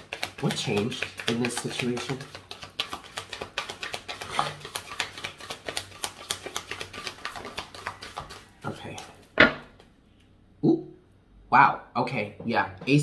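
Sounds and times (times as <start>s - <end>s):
cards being shuffled: 0.0s - 9.9s.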